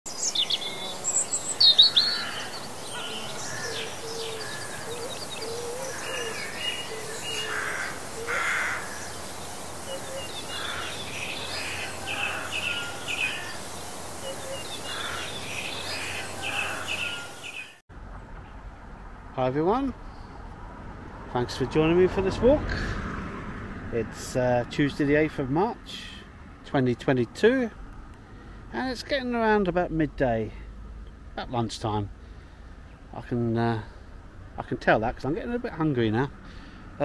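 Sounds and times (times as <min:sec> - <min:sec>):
songbirds chirping and singing: 0:00.1 - 0:17.8.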